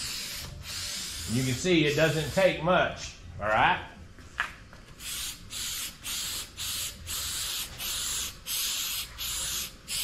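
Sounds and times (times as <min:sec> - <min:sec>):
aerosol spray hissing bursts: 0:00.0 - 0:02.5, 0:05.0 - 0:10.0.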